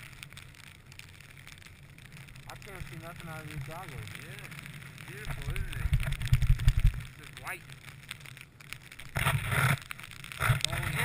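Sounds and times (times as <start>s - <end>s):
faint ticks: 0.0s - 11.0s
wind rumbling on microphone: 0.0s - 11.0s.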